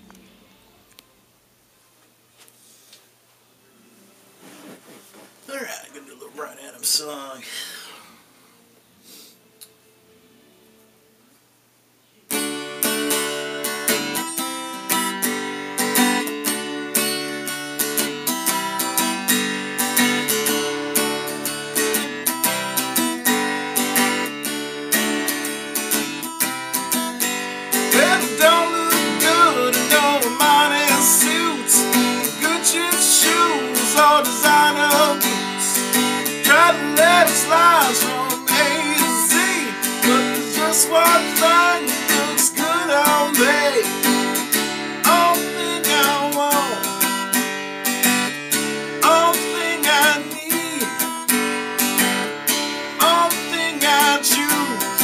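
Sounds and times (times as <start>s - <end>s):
acoustic guitar strumming: 12.3s - 55.0s.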